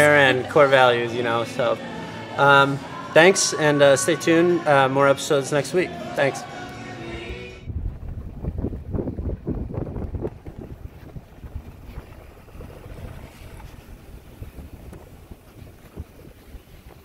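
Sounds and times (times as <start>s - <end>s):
wind buffeting microphone: 7.1s - 17.0s.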